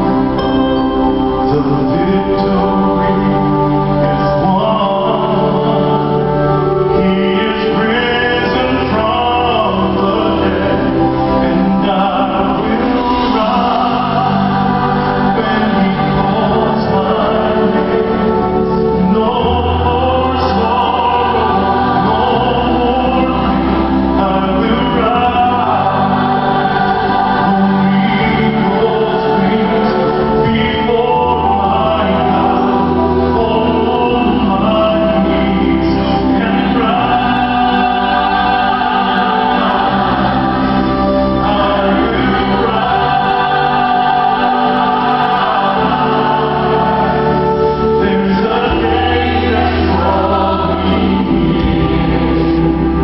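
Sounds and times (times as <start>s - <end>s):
band accompaniment: 0.0s - 53.0s
choir singing: 0.0s - 53.0s.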